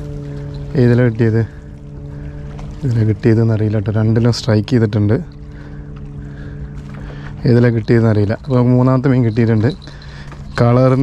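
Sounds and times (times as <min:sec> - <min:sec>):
low engine drone: 0:00.0 - 0:11.0
person speaking: 0:07.4 - 0:11.0.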